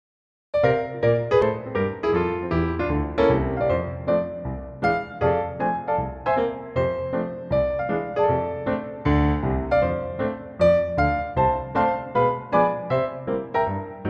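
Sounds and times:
stride jazz piano: 0:00.6 - 0:14.0.

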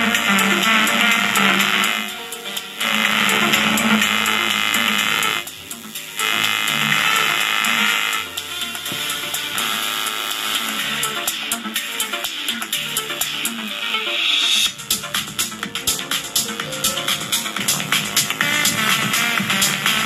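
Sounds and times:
music through small loudspeakers: 0:00.0 - 0:20.0.

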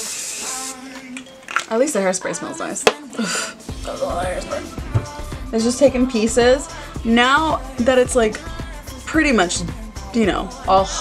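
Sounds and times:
aerosol spray hissing: 0:00.0 - 0:01.0
woman's voice: 0:01.7 - 0:11.0.

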